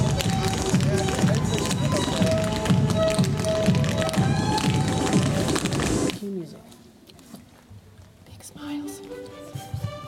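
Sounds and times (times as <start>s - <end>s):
upbeat music: 0.0s - 6.1s
tap shoes striking stage: 0.0s - 6.2s, 9.1s - 10.0s.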